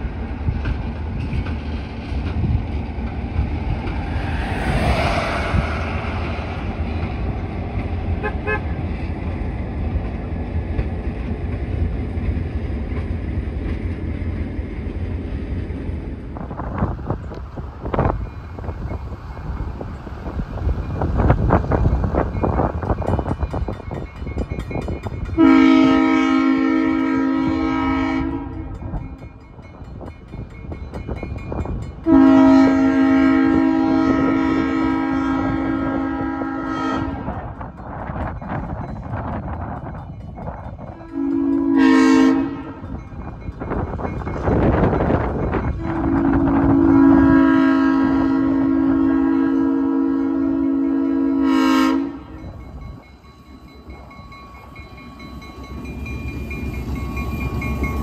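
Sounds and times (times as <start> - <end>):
passing train rumble: 0.0 - 58.0
diesel locomotive horn blasts: 8.1 - 8.9, 25.4 - 29.2, 32.0 - 37.6, 40.9 - 43.0, 45.6 - 52.6.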